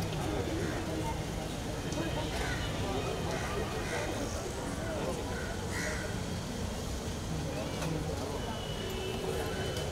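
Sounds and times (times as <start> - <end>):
crowd chatter: 0.0 - 9.9.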